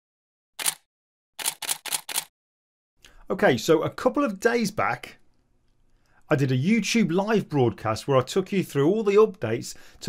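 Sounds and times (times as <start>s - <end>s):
camera shutter clicks: 0.6s - 0.8s.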